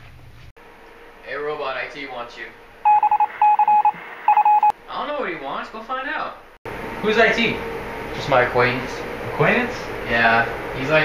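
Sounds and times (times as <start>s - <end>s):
high electronic beeps: 2.9s - 4.7s.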